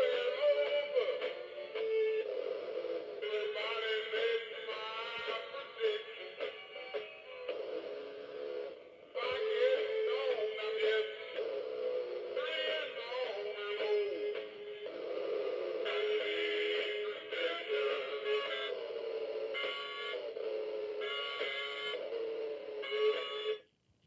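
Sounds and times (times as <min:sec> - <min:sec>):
man singing through small speaker: 0:00.0 - 0:23.6.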